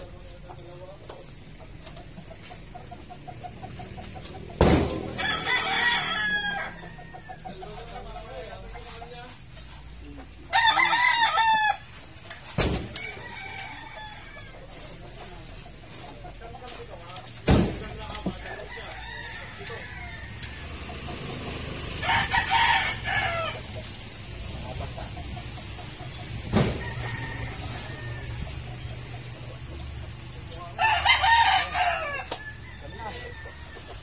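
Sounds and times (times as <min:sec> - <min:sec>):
rooster crowing: 0:05.1 - 0:07.4, 0:10.5 - 0:11.9, 0:13.0 - 0:14.8, 0:18.4 - 0:23.8, 0:26.7 - 0:28.6, 0:30.8 - 0:34.0.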